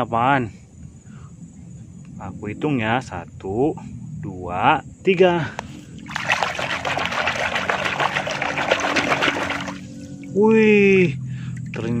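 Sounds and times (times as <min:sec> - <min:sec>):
water splashing and sloshing: 0:06.0 - 0:10.4.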